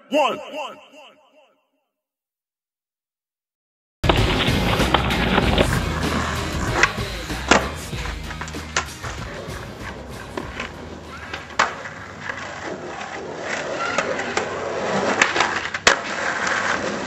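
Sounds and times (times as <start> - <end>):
skateboard wheels rolling on asphalt: 4.0 - 17.0
skateboard clacking on ground: 4.1 - 17.0.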